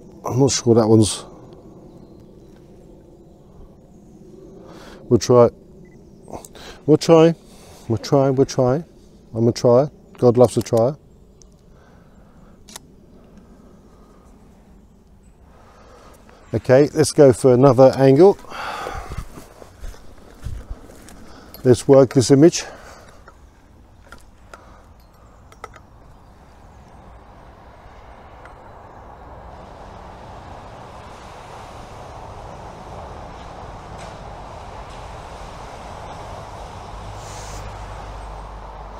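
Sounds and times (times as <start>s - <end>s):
faint outdoor background: 0.0s - 38.9s
car tyres rushing on tarmac: 26.2s - 38.9s.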